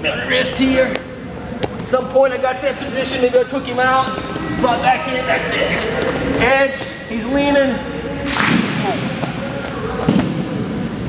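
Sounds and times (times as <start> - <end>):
sharp slap: 8.3 - 9.4.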